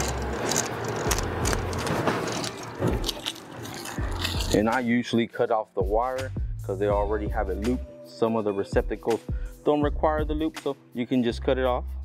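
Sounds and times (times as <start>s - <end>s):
scraping and rustling: 0.0s - 4.6s.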